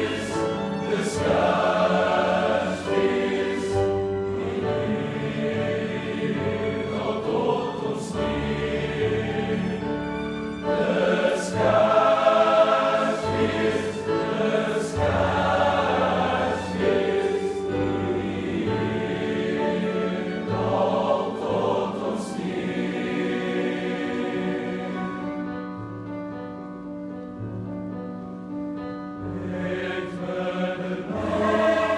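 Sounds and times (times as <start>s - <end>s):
boys' choir singing: 0.0s - 25.2s, 29.3s - 31.9s.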